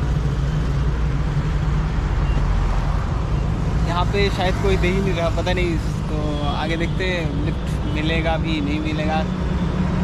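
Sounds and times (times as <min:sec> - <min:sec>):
highway traffic rumble: 0:00.0 - 0:10.0.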